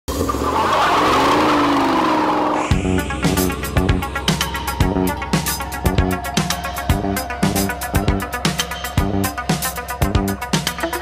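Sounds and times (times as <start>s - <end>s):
car engine running: 0.1s - 11.0s.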